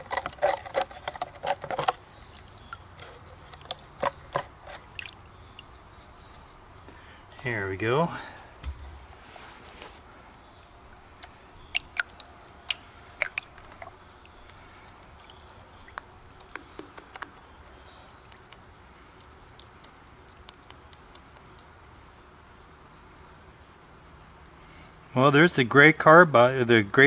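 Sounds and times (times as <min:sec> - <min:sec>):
water dripping and splashing: 0:02.2 - 0:05.9, 0:10.8 - 0:22.2.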